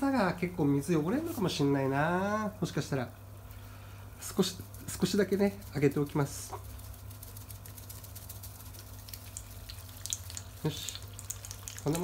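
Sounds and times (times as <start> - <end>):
low steady hum: 0.0 - 12.0
water running and bubbling: 5.9 - 12.0
small crackling pops: 6.0 - 12.0.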